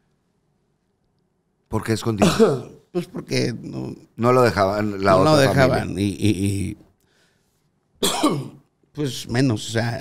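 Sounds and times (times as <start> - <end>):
man coughing: 2.2 - 2.8, 8.0 - 8.6.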